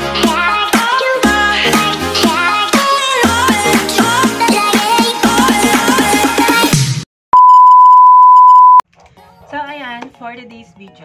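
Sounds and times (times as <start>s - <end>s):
high electronic beep tone: 7.4s - 8.8s.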